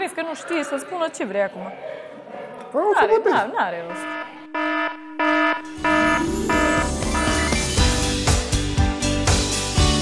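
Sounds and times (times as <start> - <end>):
electronic alert buzzer beeps: 3.9 - 7.8
music: 5.6 - 10.0.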